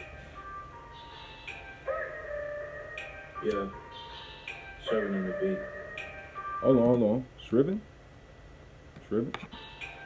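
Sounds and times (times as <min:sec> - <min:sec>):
hip-hop beat synth melody: 0:00.0 - 0:06.8.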